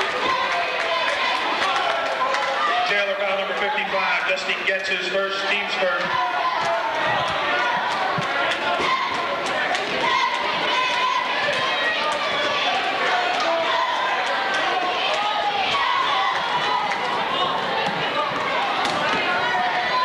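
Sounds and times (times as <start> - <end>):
many voices talking: 0.0 - 20.0.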